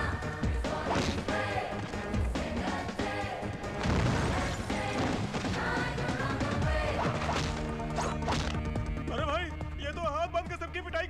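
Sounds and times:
dramatic background music: 0:00.0 - 0:11.0
body crashing down in rubble: 0:03.8 - 0:05.6
fight crashes and hits: 0:03.8 - 0:05.6.

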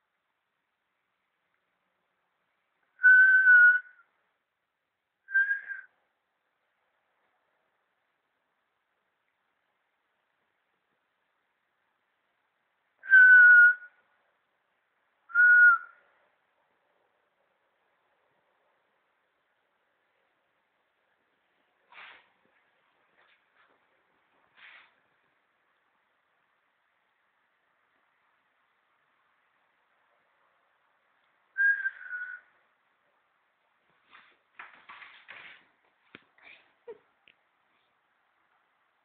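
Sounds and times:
person whistling short notes: 0:05.3 - 0:05.9, 0:13.0 - 0:13.9, 0:31.6 - 0:32.5
person whistling two notes: 0:31.6 - 0:32.4.

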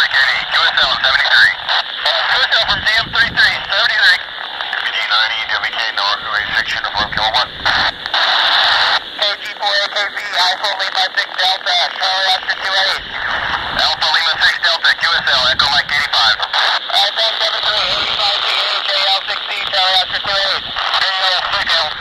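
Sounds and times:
radio hiss: 0:00.0 - 0:22.0
radio voices through handheld speaker: 0:00.0 - 0:22.0.

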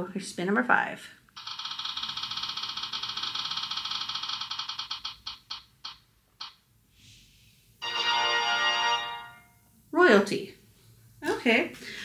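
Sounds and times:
prize wheel ticking: 0:01.4 - 0:06.6.

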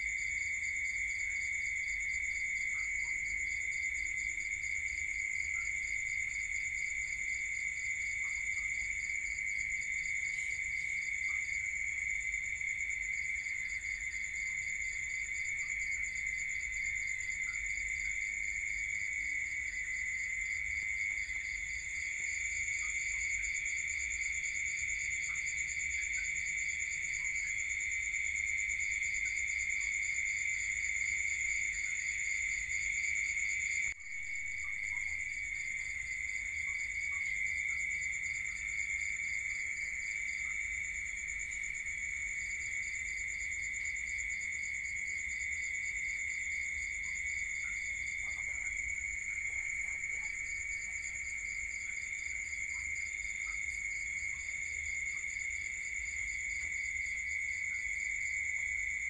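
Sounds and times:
insect chorus trilling: 0:00.0 - 0:59.0.

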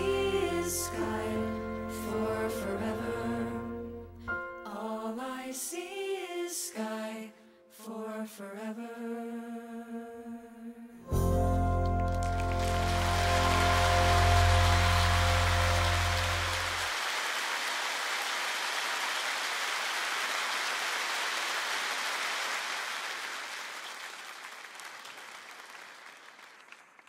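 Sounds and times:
audience applause: 0:11.8 - 0:27.0.

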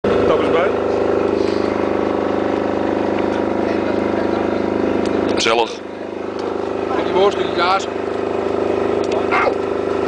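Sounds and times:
engine droning: 0:00.0 - 0:10.0.

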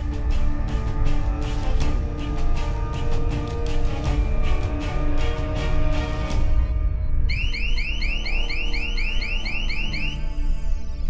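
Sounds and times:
low droning music: 0:00.0 - 0:11.0
rapid electronic alarm beeps: 0:07.3 - 0:10.8.

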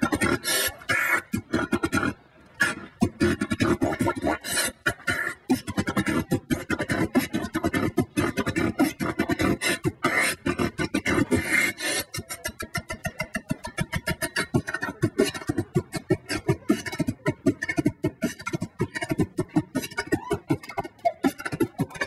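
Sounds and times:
man beatboxing: 0:00.0 - 0:22.0.

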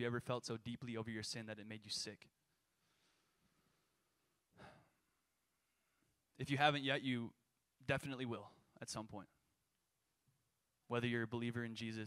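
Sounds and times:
breath into a microphone: 0:02.7 - 0:05.1.

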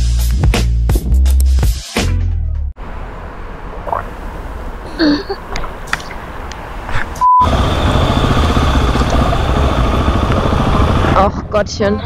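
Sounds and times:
motorcycle engine rumble: 0:02.8 - 0:12.0.

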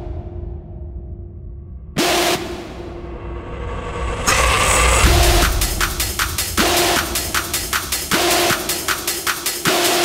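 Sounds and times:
rising noise sweep: 0:02.4 - 0:09.2
deep rumbling bass: 0:02.7 - 0:08.3.

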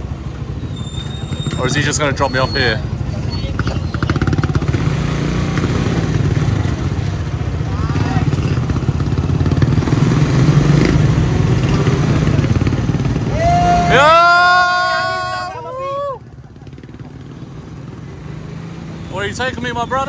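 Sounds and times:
small motorcycle engine running: 0:02.8 - 0:13.3.

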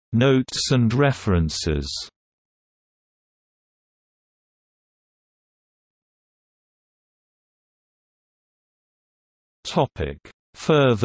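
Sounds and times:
synthesized voice: 0:00.2 - 0:02.1, 0:09.7 - 0:11.0.

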